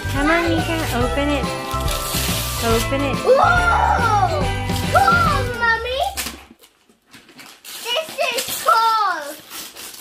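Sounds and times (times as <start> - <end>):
wrapping paper tearing and rustling: 0.0 - 10.0
child's voice: 3.2 - 6.3, 7.8 - 9.4.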